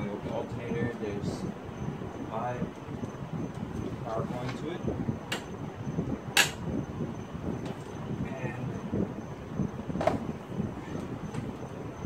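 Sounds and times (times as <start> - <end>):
low shuffling and rustling: 2.6 - 5.1.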